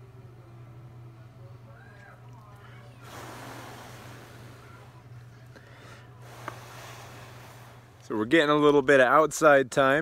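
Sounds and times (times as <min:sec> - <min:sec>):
person blowing breath: 0:03.0 - 0:04.7, 0:05.6 - 0:08.0.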